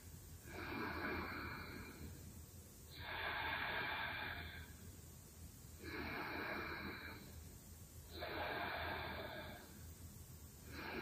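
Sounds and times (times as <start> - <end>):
person breathing slowly: 0.4 - 2.3, 2.9 - 5.0, 5.8 - 10.0, 10.6 - 11.0.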